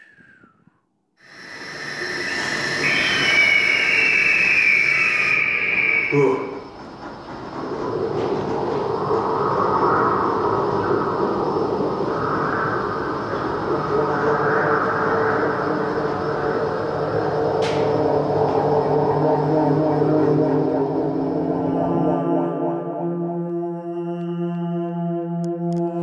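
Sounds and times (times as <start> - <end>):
rumbling rushing drone: 1.2 - 23.3.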